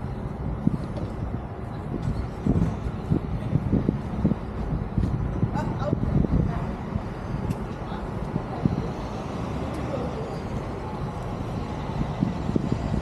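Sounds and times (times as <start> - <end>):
traffic rumble: 0.0 - 13.0
wind noise: 0.0 - 13.0.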